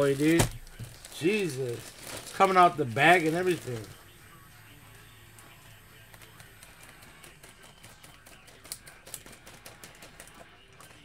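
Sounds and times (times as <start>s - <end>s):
hands handling card and plastic bag: 0.0s - 4.2s.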